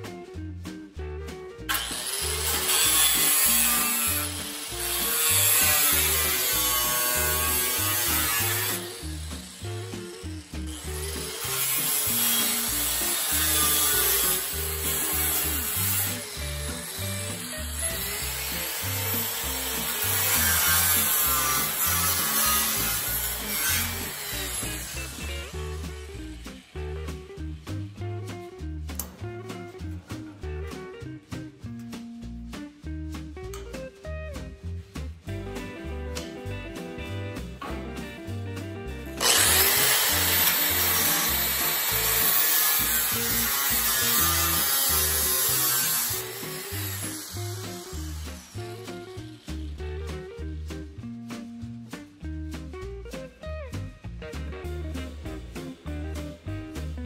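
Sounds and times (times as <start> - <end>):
angle grinder cutting sheet steel: 1.7 - 27.2, 39.2 - 49.8.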